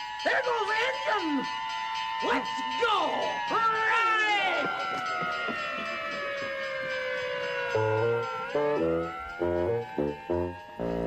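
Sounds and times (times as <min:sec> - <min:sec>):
fire engine siren wailing: 0:00.8 - 0:11.0
plucked guitar notes: 0:07.8 - 0:11.0.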